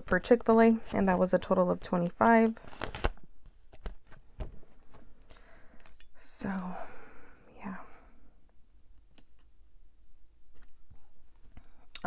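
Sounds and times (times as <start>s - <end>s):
woman speaking softly: 0.0s - 2.6s, 6.2s - 6.9s, 7.5s - 8.0s.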